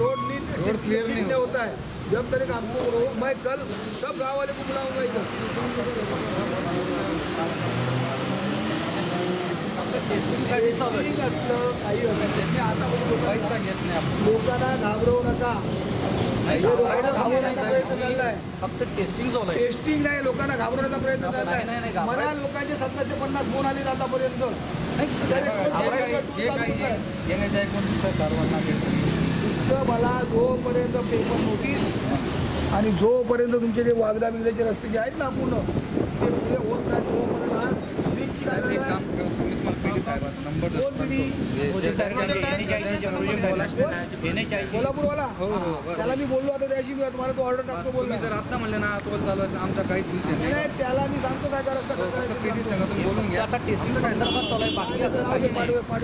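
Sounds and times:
men talking: 0.0 - 56.0
road and heavy vehicle noise: 0.0 - 56.0.

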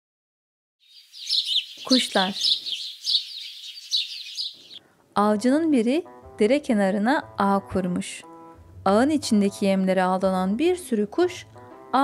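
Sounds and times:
small birds chirping: 0.8 - 4.8.

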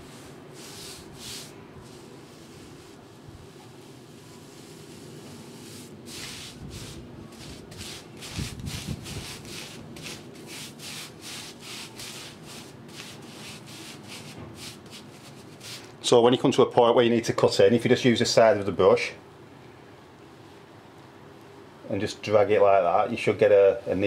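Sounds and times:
paintbrush scrubbing rough wall: 0.0 - 15.9.

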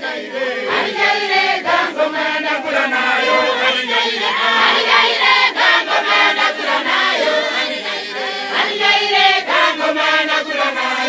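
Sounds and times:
congregation singing in choir: 0.0 - 11.0.

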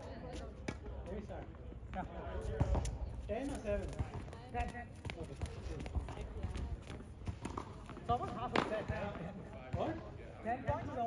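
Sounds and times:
faint talking voices: 0.0 - 11.0
tennis ball striking hard court: 7.3 - 9.0.

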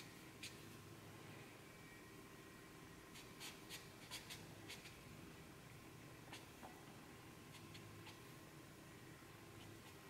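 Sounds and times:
marker pen scratching on paper: 3.1 - 5.0, 7.5 - 8.3, 9.6 - 10.0.

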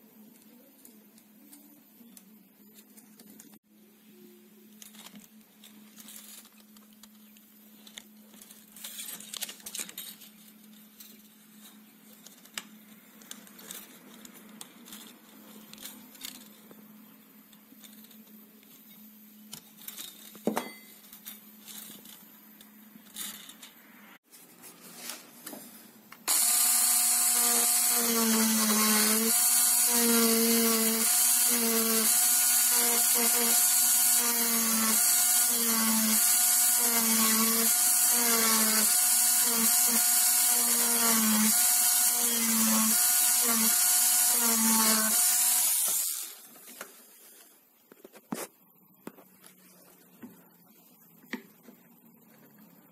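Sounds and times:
electric driver whining: 26.3 - 46.4.

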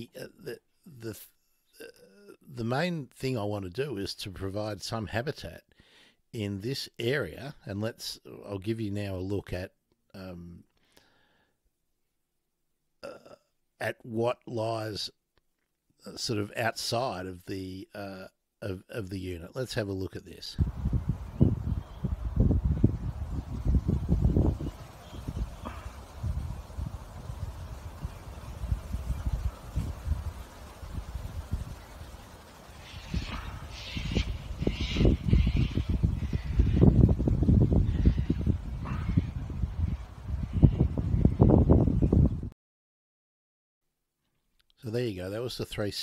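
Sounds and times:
wind buffeting microphone: 20.6 - 42.5
bird calls: 24.2 - 26.8, 31.6 - 40.8.

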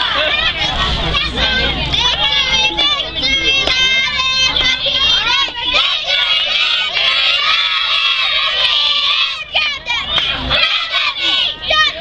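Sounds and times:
girls yelling a cheer in unison: 2.0 - 12.0.

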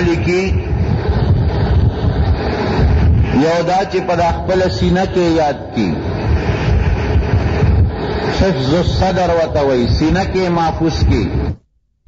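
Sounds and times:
wind buffeting microphone: 0.0 - 11.6.

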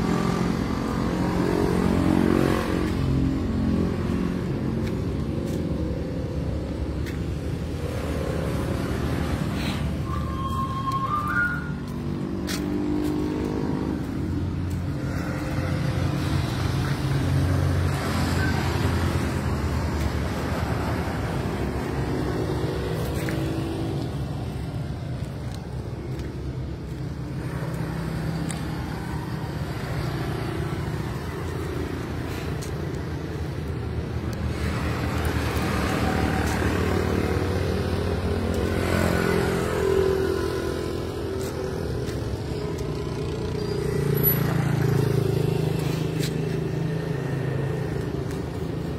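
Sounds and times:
vehicle engine rumble: 0.0 - 48.9.

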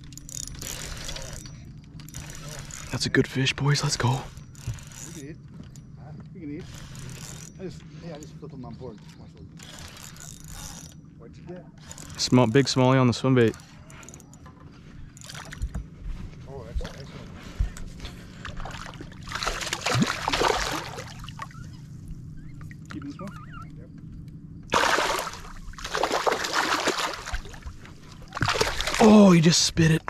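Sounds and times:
steady low hum: 0.0 - 30.0
fish splashing at water surface: 18.4 - 21.6, 24.7 - 29.3.

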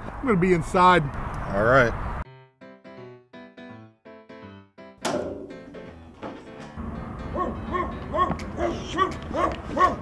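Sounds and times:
sudden thump: 5.0 - 6.4
rapid dog barking: 7.4 - 10.0.

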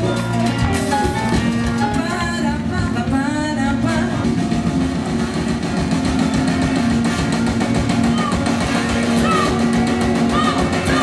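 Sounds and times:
live salsa band playing: 0.0 - 11.0.

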